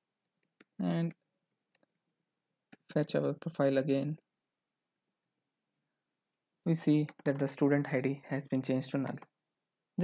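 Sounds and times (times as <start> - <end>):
person speaking: 0.6 - 1.3, 2.7 - 4.3, 6.6 - 9.4.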